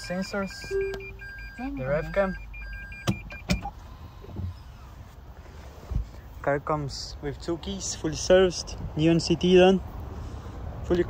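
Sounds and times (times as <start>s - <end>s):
rapid high reverse beeps: 0.0s - 3.7s.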